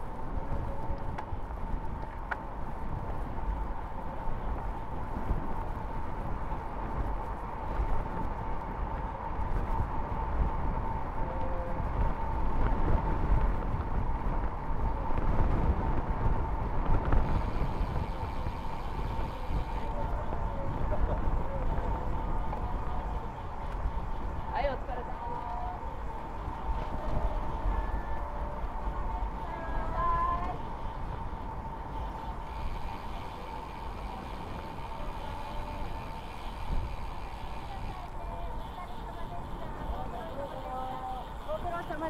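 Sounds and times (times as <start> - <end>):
bike tyre road rumble: 0.0 - 42.0
wind buffeting microphone: 0.0 - 42.0
faint steady high tone: 25.4 - 36.3.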